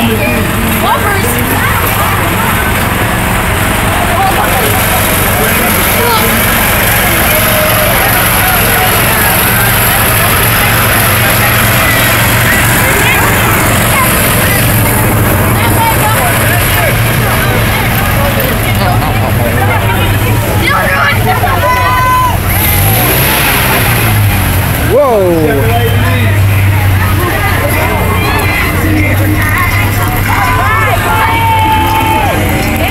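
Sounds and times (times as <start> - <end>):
people talking: 0.0 - 32.9
small engine running: 0.0 - 32.9.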